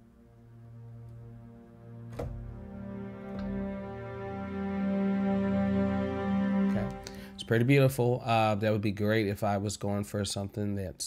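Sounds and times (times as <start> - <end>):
sustained string chords: 0.0 - 8.6.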